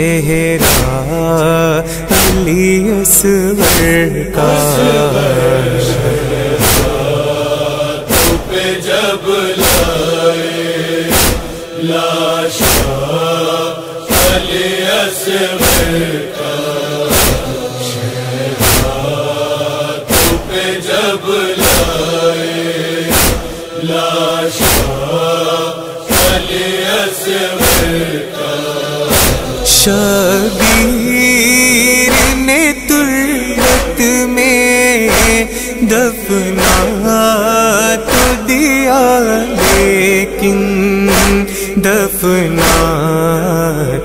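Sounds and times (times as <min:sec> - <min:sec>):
men chanting: 0:00.0 - 0:44.0
rhythmic chest-beating: 0:00.3 - 0:43.7.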